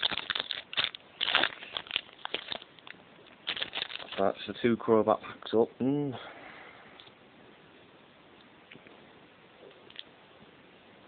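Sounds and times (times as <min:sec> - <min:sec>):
foil wrapper crinkling: 0:00.0 - 0:04.5.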